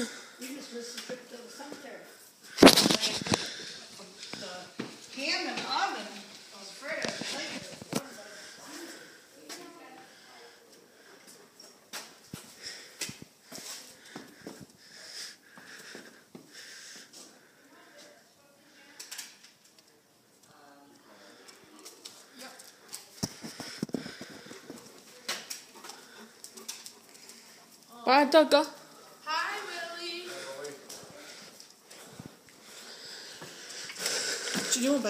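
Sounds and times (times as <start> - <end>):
dog panting: 21.2 - 28.0.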